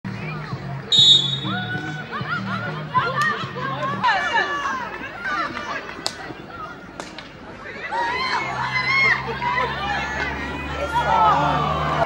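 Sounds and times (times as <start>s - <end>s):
background music: 0.1s - 7.1s
voices: 0.1s - 12.0s
referee's whistle blast: 0.9s - 1.7s.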